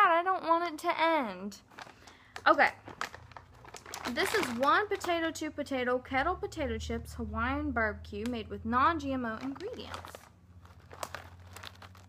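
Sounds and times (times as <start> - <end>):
plastic snack bag crinkling: 1.6 - 5.4, 9.3 - 12.0.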